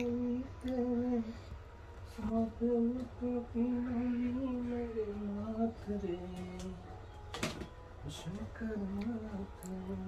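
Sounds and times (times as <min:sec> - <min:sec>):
person humming a tune: 0:00.0 - 0:01.4.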